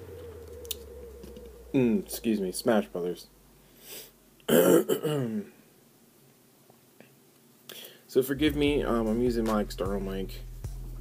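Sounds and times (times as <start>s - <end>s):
man coughing: 4.5s - 5.5s.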